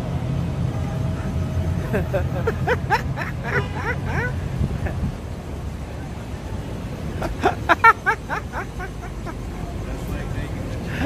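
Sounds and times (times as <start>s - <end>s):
low background rumble: 0.0s - 11.0s
high squealing laugh: 1.8s - 5.1s, 7.2s - 9.7s.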